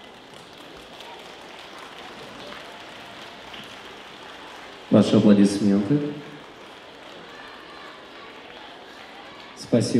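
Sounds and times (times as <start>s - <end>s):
large hall background noise: 0.0s - 9.9s
man announcing over loudspeaker: 4.9s - 6.4s, 9.6s - 9.9s.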